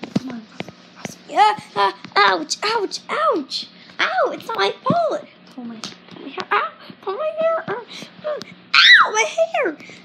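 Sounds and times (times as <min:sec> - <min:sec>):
child wailing and crying: 0:08.8 - 0:09.2.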